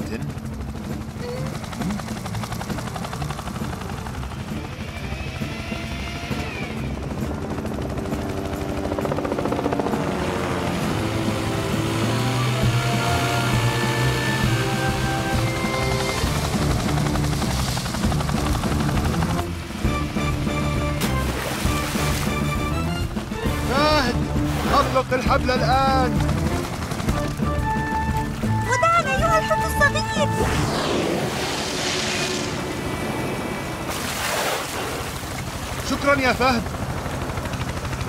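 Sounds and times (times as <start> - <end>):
background music: 0.0 - 31.5
cartoon helicopter rotor chopping: 0.0 - 34.0, 34.9 - 38.0.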